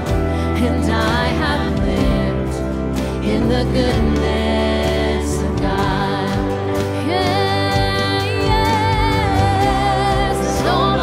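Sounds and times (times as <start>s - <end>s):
person singing: 0.0s - 11.0s
worship band playing: 0.0s - 11.0s.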